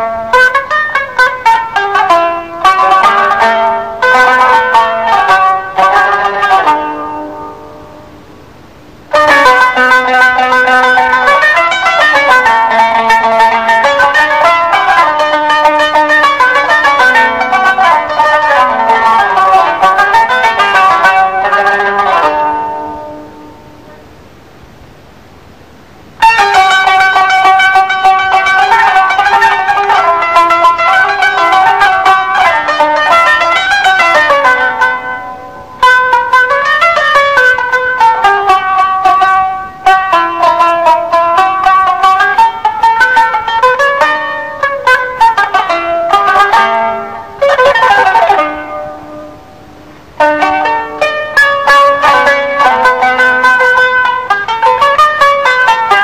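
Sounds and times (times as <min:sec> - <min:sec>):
plucked string instrument melody: 0:00.0 - 0:24.4, 0:25.8 - 0:56.0.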